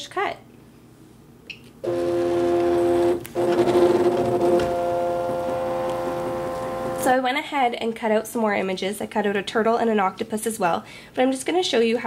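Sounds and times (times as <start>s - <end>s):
cutting machine motor hum: 1.8s - 7.1s.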